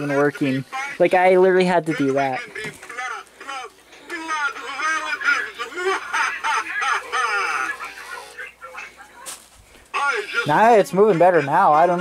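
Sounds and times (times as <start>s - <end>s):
high wavering toy voice: 1.9s - 9.2s.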